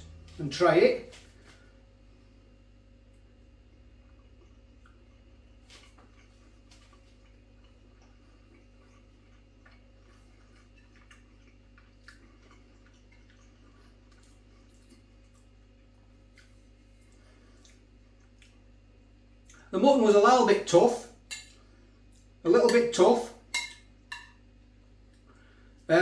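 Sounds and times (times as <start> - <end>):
low room hum: 0.0 - 26.0
person chewing with mouth closed: 4.0 - 15.6, 16.2 - 18.7.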